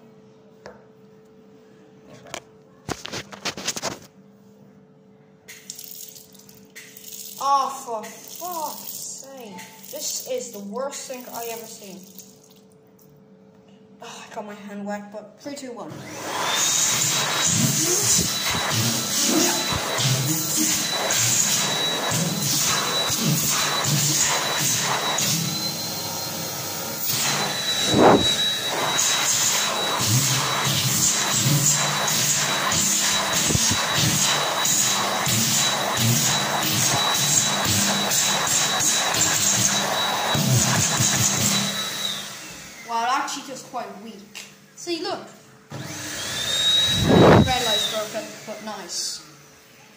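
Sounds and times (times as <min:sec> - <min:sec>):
hand dryer motor whine: 0:15.9 - 0:43.3, 0:45.7 - 0:49.9
rush of air: 0:27.8 - 0:28.4.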